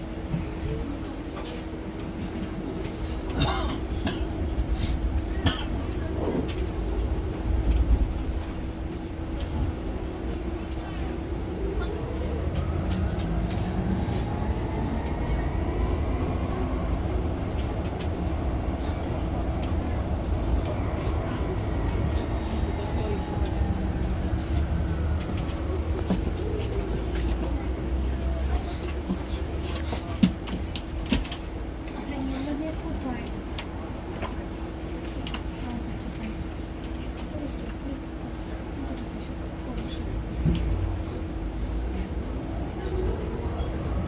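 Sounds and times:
road rumble: 0.0 - 44.0
electric bus drive whine: 6.6 - 29.6.

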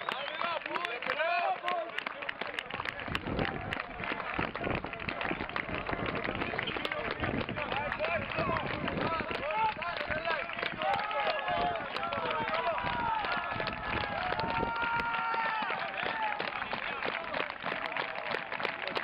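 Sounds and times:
many voices talking and calling out: 1.2 - 15.0.

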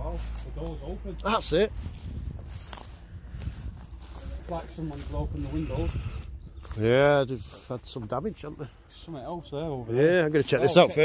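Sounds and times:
low rumble: 0.0 - 6.8
footsteps through dry undergrowth: 0.0 - 11.0.

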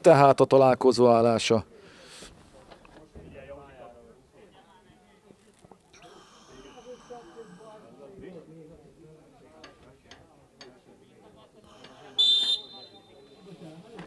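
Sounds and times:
faint distant voices: 1.2 - 14.0
high-pitched whistle blast: 12.2 - 13.5.

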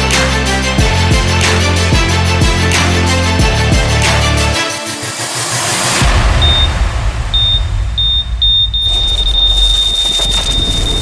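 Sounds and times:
low rumble: 5.5 - 11.0
high electronic beep: 6.4 - 11.0.

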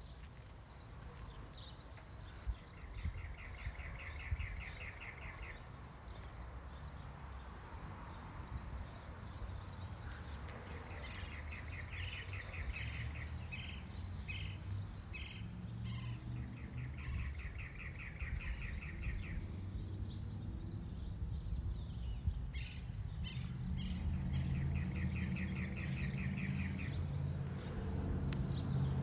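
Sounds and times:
bird singing rapid trills: 11.2 - 29.0.

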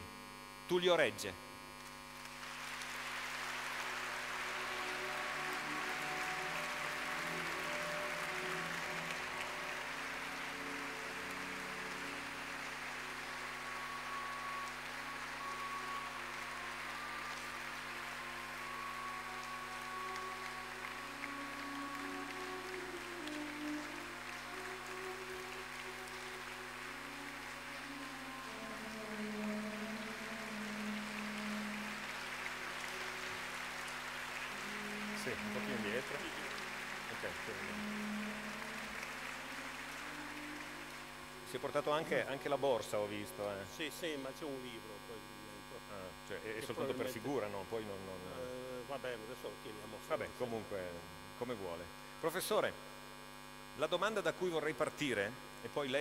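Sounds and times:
audience applauding: 2.2 - 43.8
slow music with held notes: 2.2 - 47.9.

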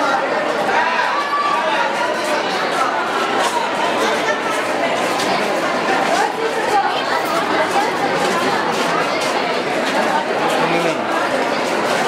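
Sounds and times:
overlapping indistinct voices: 0.0 - 12.0.

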